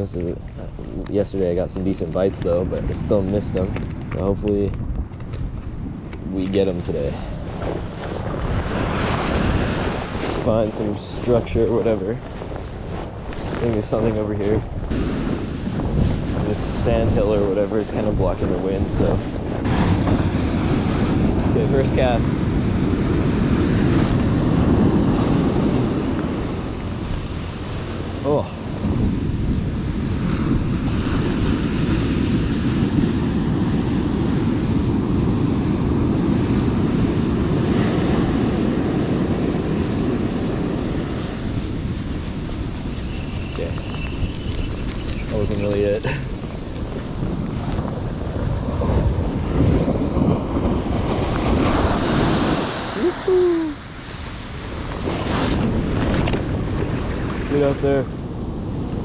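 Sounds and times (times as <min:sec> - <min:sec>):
wind buffeting microphone: 0:00.0 - 0:59.0
surf breaking on beach: 0:06.5 - 0:59.0.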